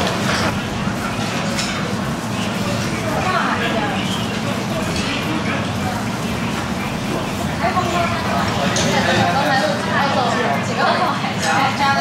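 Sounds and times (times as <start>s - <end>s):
steady low hum: 0.0s - 11.2s
people talking at tables: 0.0s - 12.0s.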